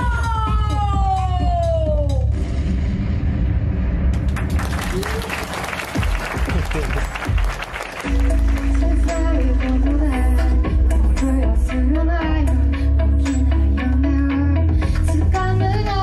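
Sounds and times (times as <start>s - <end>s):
electronic pop music with heavy bass: 0.0s - 16.0s
audience clapping and cheering: 4.1s - 10.2s.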